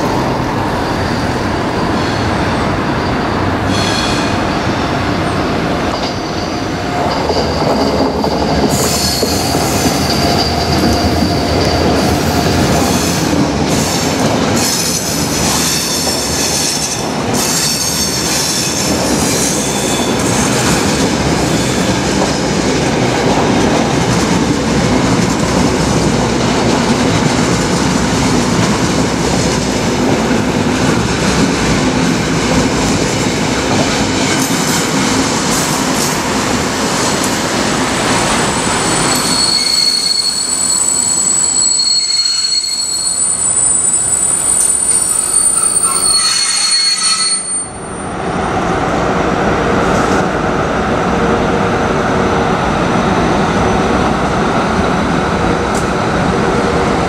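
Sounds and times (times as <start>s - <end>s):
steel wheels on rails: 5.4s - 48.2s
high wheel squeal: 38.5s - 48.1s.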